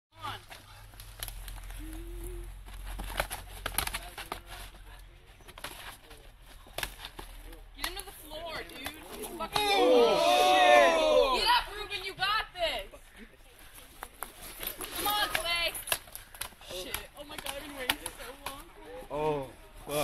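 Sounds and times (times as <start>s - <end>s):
people shouting loudly: 9.4s - 11.7s.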